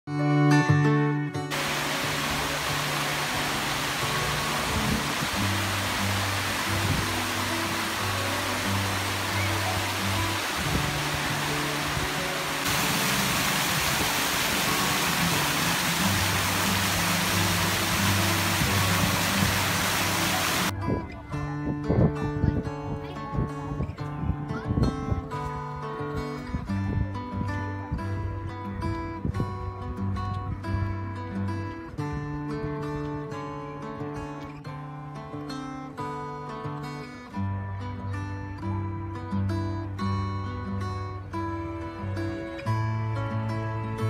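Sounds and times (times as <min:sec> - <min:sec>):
fountain water splashing: 0:01.5 - 0:20.7.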